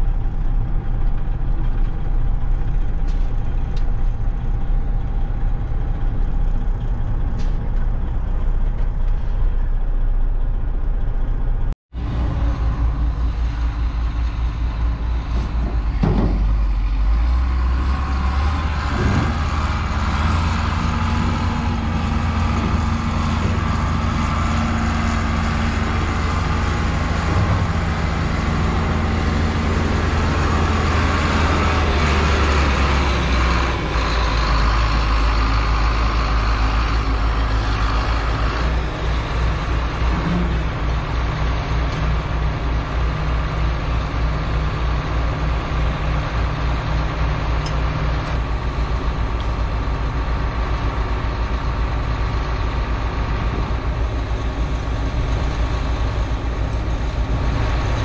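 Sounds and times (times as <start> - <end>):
tractor diesel engine running: 0.0 - 58.0
truck engine and road noise: 0.0 - 58.0.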